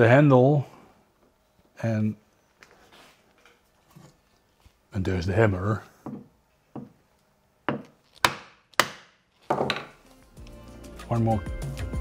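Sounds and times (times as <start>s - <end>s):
wooden mallet knocking on wood: 6.0s - 7.0s, 7.7s - 10.0s.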